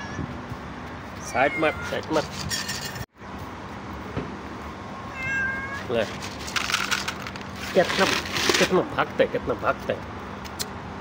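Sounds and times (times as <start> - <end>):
kitten meowing: 1.2 - 2.2, 5.1 - 6.0.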